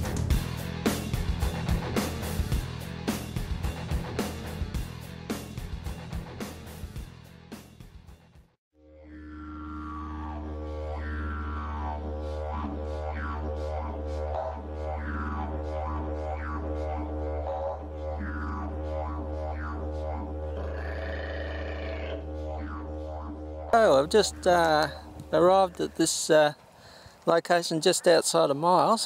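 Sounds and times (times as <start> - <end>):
didgeridoo drone: 0.0 - 6.9, 8.8 - 26.4.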